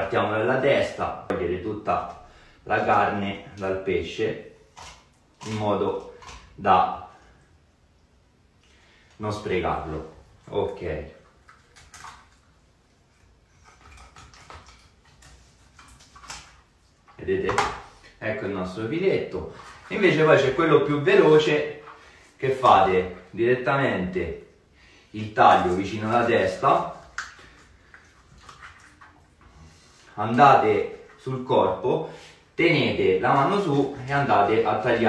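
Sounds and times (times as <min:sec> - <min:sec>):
knife scraping fish: 0:13.5 - 0:16.7.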